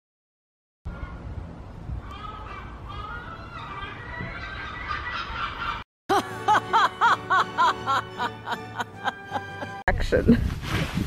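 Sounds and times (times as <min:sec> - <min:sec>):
gull laughing squawks: 0:02.2 - 0:08.6.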